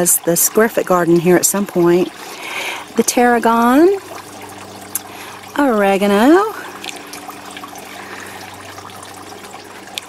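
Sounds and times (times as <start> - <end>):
hiss like trickling water: 0.0 - 10.0.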